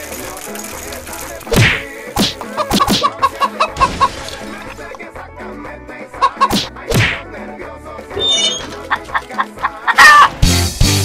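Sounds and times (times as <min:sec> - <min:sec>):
loud whack: 0:01.6 - 0:03.1, 0:06.5 - 0:07.2
chicken clucking: 0:02.4 - 0:04.5, 0:06.2 - 0:06.6, 0:08.2 - 0:10.4.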